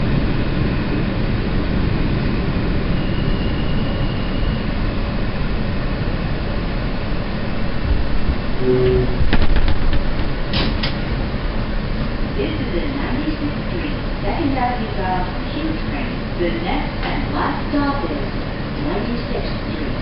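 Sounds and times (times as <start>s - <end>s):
subway car rumbling: 0.0s - 20.0s.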